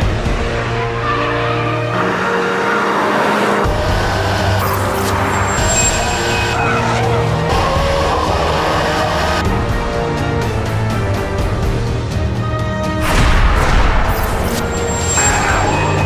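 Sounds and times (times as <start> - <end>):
car engine running hard: 0.0 - 11.9
background music: 0.0 - 16.0.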